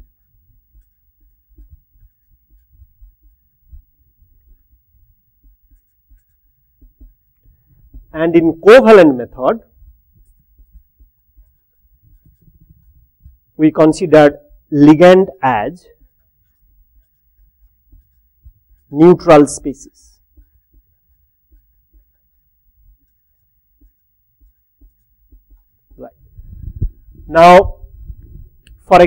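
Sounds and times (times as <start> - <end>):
marker pen scratching on whiteboard: 0.0 - 29.0.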